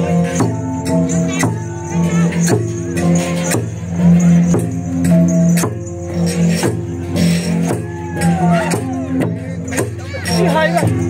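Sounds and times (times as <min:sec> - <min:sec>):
gong ensemble playing: 0:00.0 - 0:11.0.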